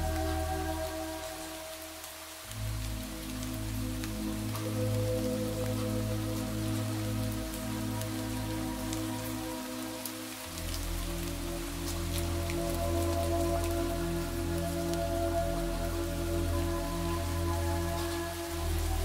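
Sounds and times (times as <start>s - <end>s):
ambient meditation music: 0.0s - 19.0s
steady rain: 0.0s - 19.0s.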